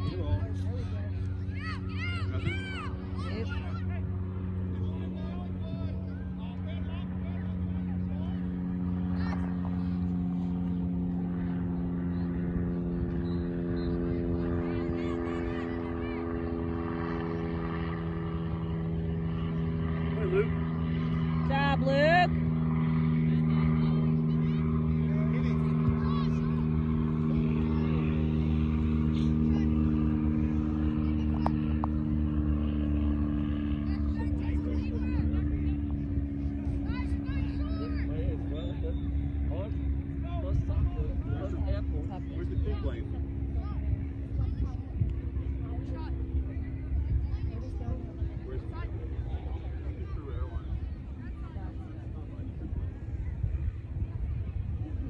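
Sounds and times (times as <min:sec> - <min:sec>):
distant shouts: 0:00.0 - 0:18.1.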